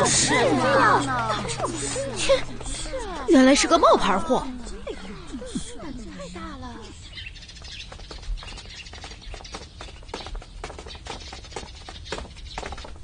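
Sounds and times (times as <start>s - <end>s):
women chattering: 0.0s - 7.2s.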